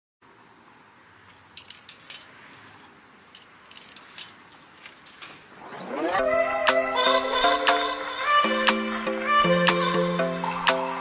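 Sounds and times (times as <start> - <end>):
song: 5.7 - 11.0.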